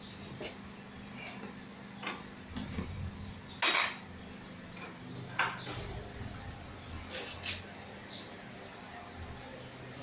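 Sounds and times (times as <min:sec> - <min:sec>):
metal tools clinking: 0:03.6 - 0:04.1.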